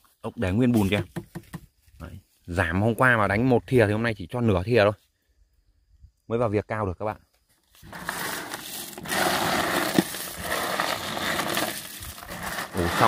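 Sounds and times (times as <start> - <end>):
snail shells crunching and rustling: 7.8 - 13.0.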